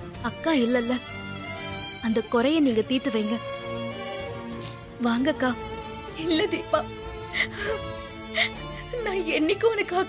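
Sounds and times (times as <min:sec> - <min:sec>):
background music score: 0:00.0 - 0:10.0
woman crying: 0:06.4 - 0:09.2.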